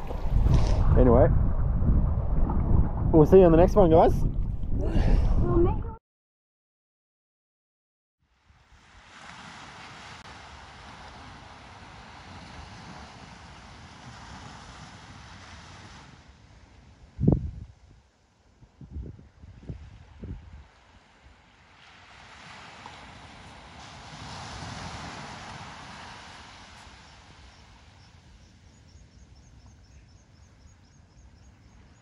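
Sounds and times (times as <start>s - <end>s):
distant surf: 0.0s - 4.2s, 8.4s - 17.2s, 20.0s - 32.0s
wind: 0.0s - 6.0s, 8.2s - 32.0s
wind buffeting microphone: 0.0s - 6.0s, 17.0s - 18.0s, 18.6s - 20.7s.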